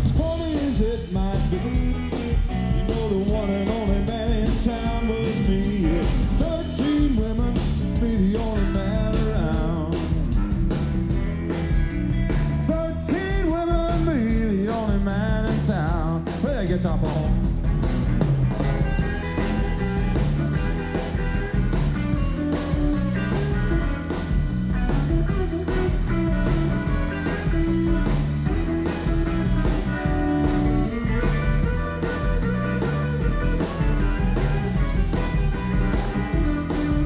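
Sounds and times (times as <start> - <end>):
blues-rock band playing: 0.0 - 37.0
electric guitar solo: 18.5 - 37.0.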